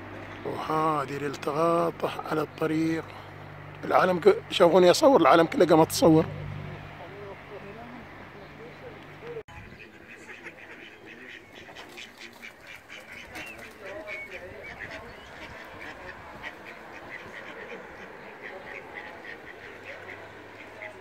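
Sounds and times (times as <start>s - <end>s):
ducklings peeping: 7.6s - 21.0s.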